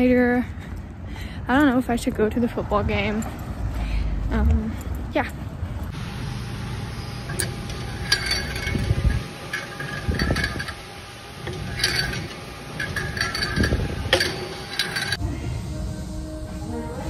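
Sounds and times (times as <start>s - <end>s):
weight stack clinking and clanking: 7.2s - 15.2s
weight stack thumping: 7.3s - 15.2s.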